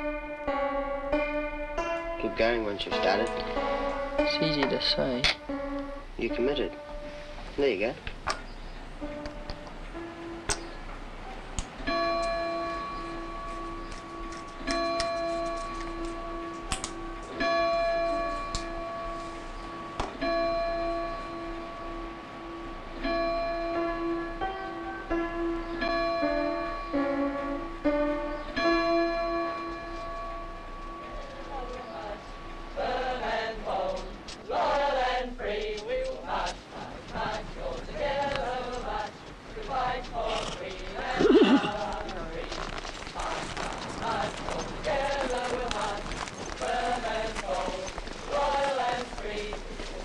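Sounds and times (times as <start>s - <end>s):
clock chimes ringing: 2.0s - 7.9s, 11.8s - 27.8s, 28.4s - 33.7s.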